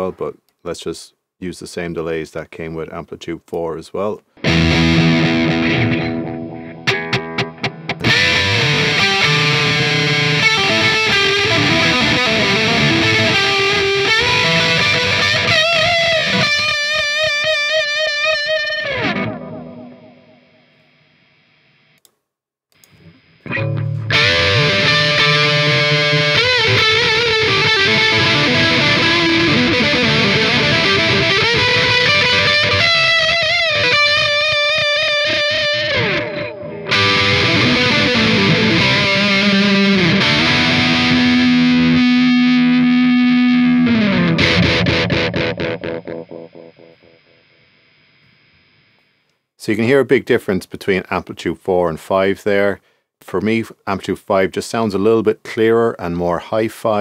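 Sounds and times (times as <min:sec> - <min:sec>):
distorted electric guitar lead: 0:04.4 - 0:22.0, 0:22.8 - 0:49.1.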